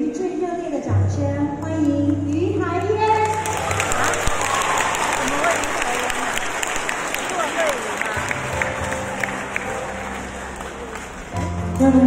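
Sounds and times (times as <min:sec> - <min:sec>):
audience applauding: 0:03.3 - 0:12.0.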